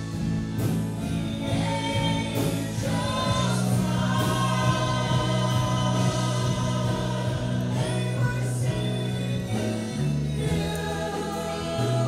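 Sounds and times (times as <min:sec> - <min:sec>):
singers holding long notes: 0:00.0 - 0:12.0.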